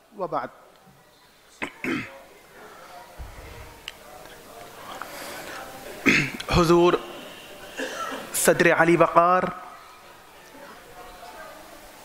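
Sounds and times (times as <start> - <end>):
man clearing his throat: 1.6 - 2.2, 6.0 - 6.4.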